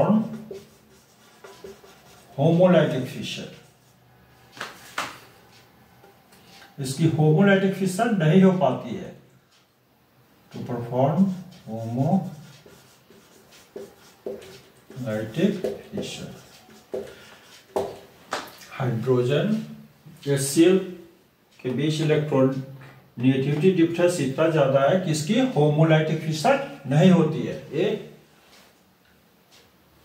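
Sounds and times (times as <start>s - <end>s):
person speaking: 0.0s - 4.0s, 6.6s - 9.3s, 10.5s - 18.0s, 18.6s - 28.2s
marker writing on whiteboard: 0.0s - 5.8s, 10.5s - 18.6s, 21.6s - 24.6s.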